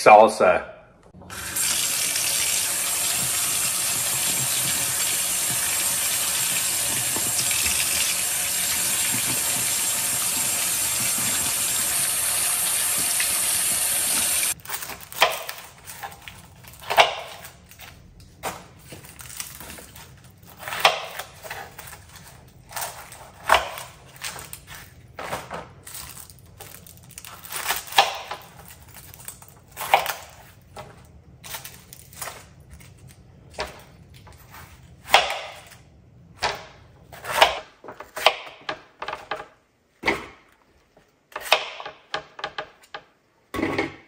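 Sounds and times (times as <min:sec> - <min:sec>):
faucet running into sink: 0:01.3 - 0:14.6
rinsing tomatoes by hand: 0:01.3 - 0:14.6
onion skin crackling: 0:25.8 - 0:30.7.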